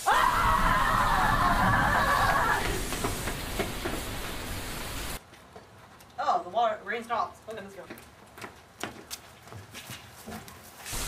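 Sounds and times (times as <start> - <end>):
falling water hissing: 0.0 - 5.2.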